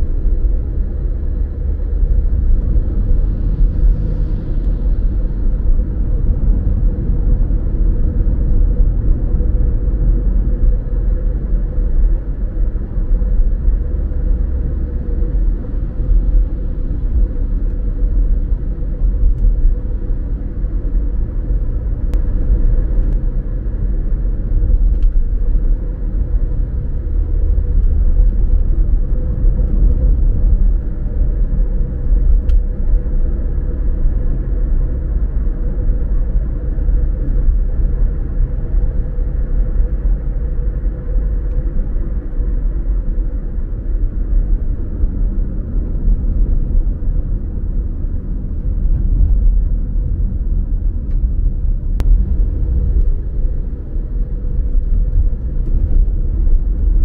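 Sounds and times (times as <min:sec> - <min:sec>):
car driving on road: 0:00.0 - 0:57.0
faint steady hum: 0:00.0 - 0:57.0.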